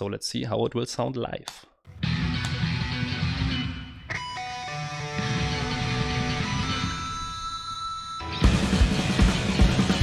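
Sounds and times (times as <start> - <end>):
electric guitar chords: 1.9 - 7.2, 8.2 - 10.0
live rock band music: 2.0 - 6.9, 8.3 - 10.0.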